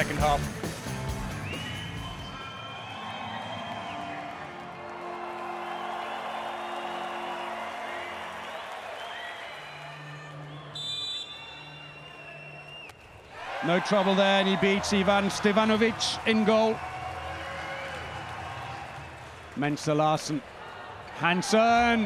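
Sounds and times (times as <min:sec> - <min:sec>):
crowd noise: 0:01.4 - 0:22.0.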